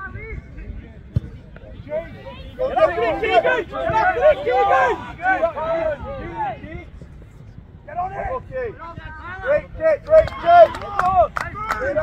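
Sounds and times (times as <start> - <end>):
distant shouting of players: 1.2 - 7.0, 7.9 - 12.0.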